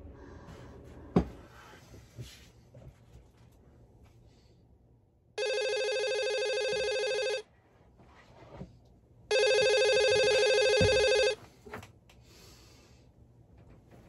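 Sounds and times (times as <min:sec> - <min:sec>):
mobile phone ringing: 0:05.4 - 0:07.5, 0:09.3 - 0:11.4.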